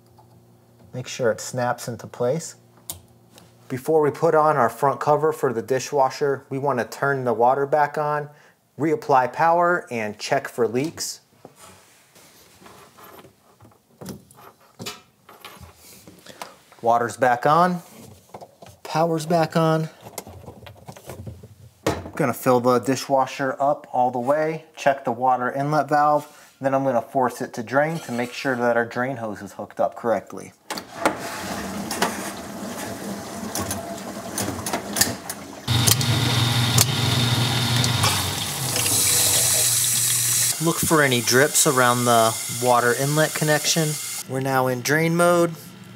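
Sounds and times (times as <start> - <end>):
dishwasher filling with water: 31.1 - 44.2
water rushing: 31.6 - 44.2.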